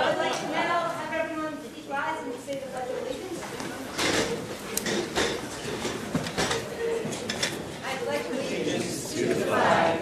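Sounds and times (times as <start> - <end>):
chairs scraping and bumping: 3.8 - 7.8.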